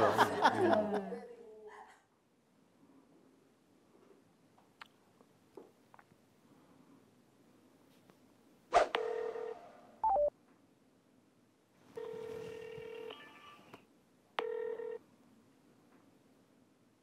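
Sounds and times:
telephone ringback tone: 9.0s - 10.3s, 12.0s - 13.7s, 14.4s - 15.0s.

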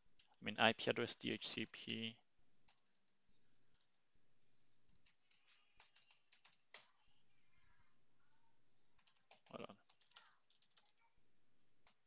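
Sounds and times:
computer keyboard typing: 0.2s - 0.4s, 1.8s - 4.0s, 4.9s - 7.0s, 9.0s - 11.0s.

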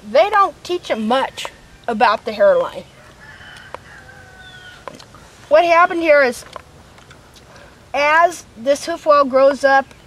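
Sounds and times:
faint drawn-out bird call: 2.9s - 5.3s.

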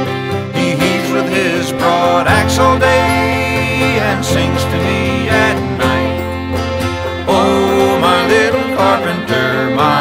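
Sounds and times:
folk song with plucked strings: 0.0s - 10.0s
sliding melody line: 1.0s - 9.6s.

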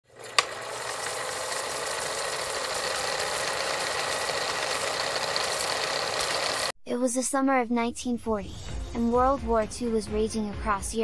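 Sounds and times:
film projector whirring: 0.0s - 6.7s.

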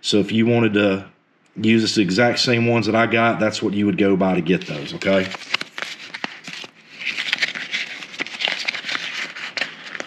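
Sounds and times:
plastic packaging crinkling: 4.6s - 10.0s.

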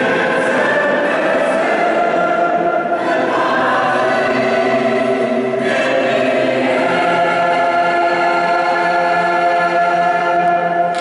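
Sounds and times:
mixed choir singing: 0.0s - 11.0s.

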